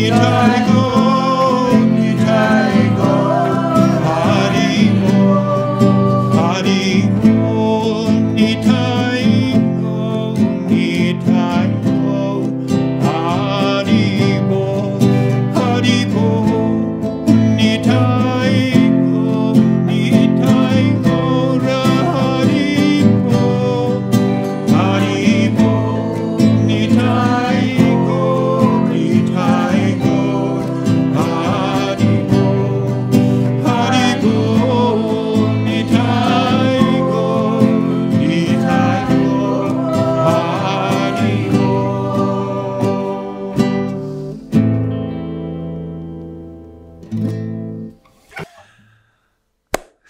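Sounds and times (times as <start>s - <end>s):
man singing: 0.0s - 44.4s
strummed acoustic guitar: 0.0s - 48.8s.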